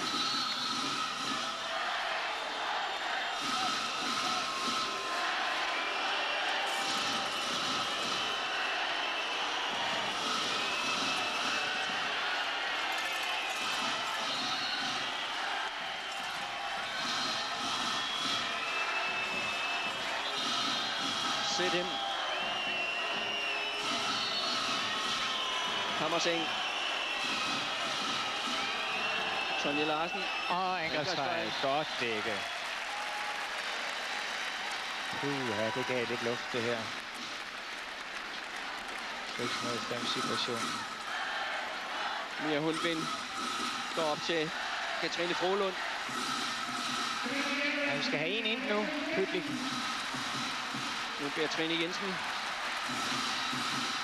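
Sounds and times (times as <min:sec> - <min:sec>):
crowd din of voices: 0:00.0 - 0:33.1, 0:38.1 - 0:54.0
whistles: 0:00.0 - 0:33.3, 0:39.3 - 0:41.1, 0:42.4 - 0:54.0.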